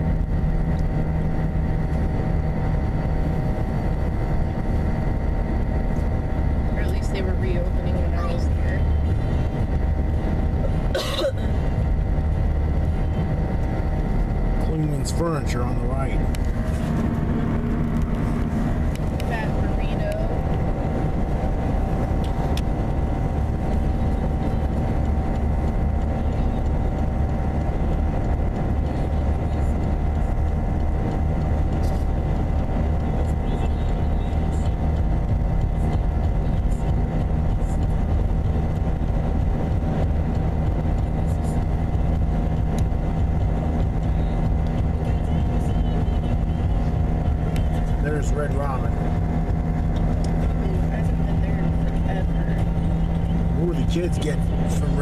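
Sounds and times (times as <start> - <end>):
car engine hum: 0.0 - 55.0.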